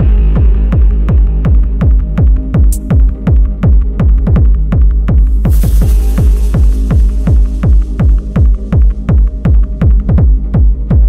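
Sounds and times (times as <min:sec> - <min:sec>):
hard electronic dance music: 0:05.1 - 0:11.0.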